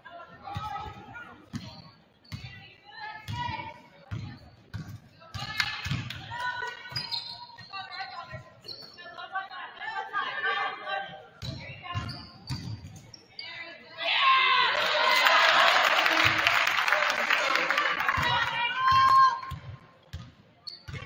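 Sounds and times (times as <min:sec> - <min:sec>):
crowd cheering: 0:14.1 - 0:19.4.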